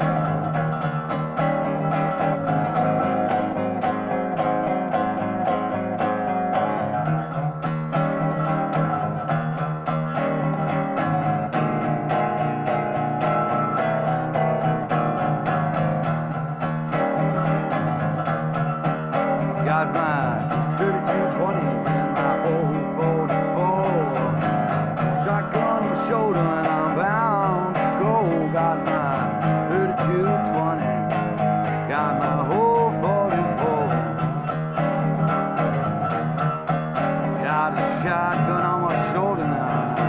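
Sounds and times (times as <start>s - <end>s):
resonator guitar fingerstyle blues: 0.0s - 40.0s.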